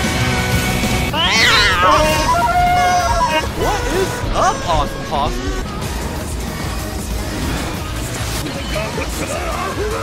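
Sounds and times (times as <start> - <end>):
high wavering meow-like cry: 1.1 - 3.8.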